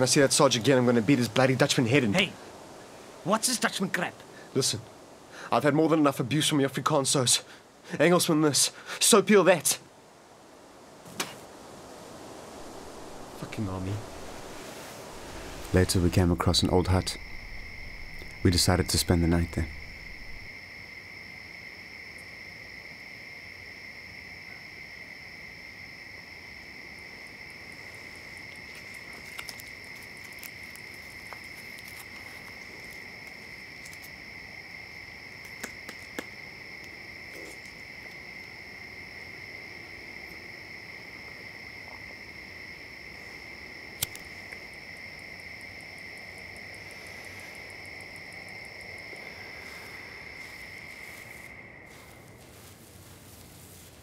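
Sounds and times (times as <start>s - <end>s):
crickets chirring: 0.0s - 54.0s.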